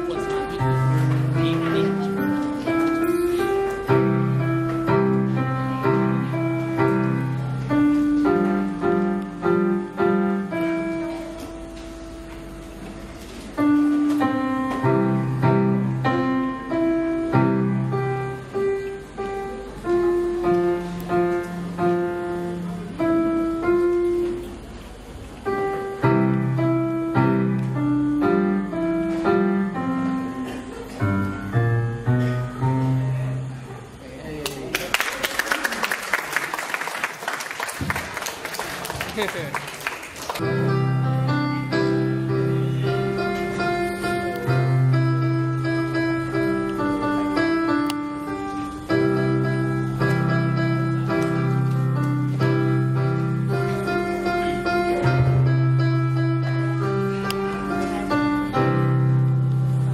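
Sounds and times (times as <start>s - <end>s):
electronic keyboard melody: 0.0s - 33.2s, 40.4s - 59.9s
applause: 34.4s - 40.4s.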